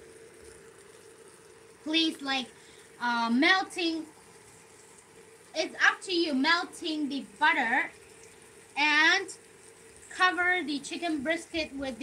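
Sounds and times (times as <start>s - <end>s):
chicken frying in butter: 0.0s - 12.0s
steady hum: 0.0s - 12.0s
woman's voice: 1.9s - 4.1s, 5.6s - 7.9s, 8.8s - 9.4s, 10.1s - 12.0s.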